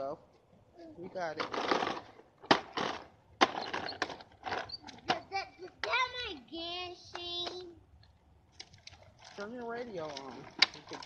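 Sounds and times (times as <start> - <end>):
plastic wheels rattling on concrete: 1.3 - 5.2, 8.7 - 11.0.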